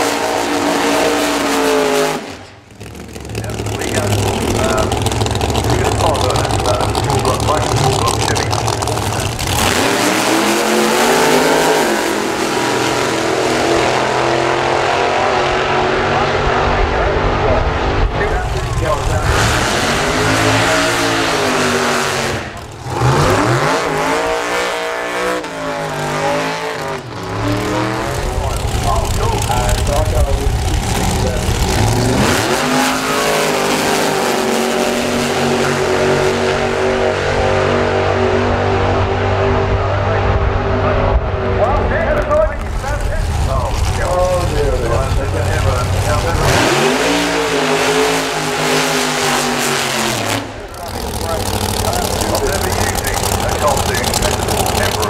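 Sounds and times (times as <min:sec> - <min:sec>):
drag racing engines revving: 0:00.0 - 0:55.0.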